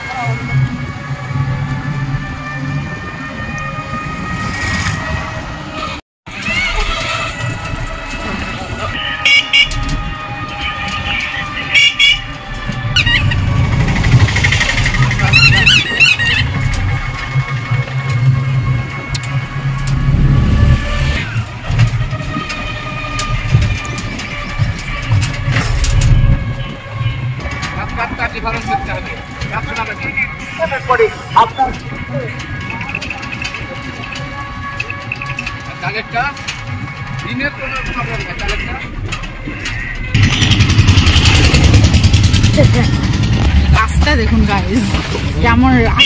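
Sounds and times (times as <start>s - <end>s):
low rumble of wheels: 0.0s - 46.0s
rattles and clicks: 9.6s - 46.0s
high whining tones: 28.5s - 44.8s.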